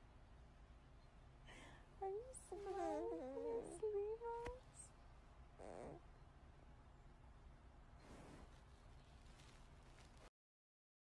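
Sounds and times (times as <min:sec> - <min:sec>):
baby cooing: 0:02.6 - 0:04.0.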